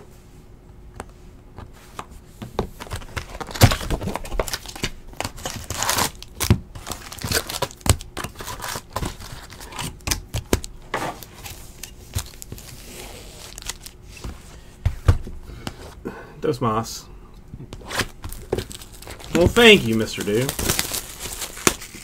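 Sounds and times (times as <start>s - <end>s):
foil wrapper tearing and crinkling: 3.2s - 9.7s, 12.2s - 14.0s, 18.0s - 22.0s
cards being handled: 17.7s - 22.0s.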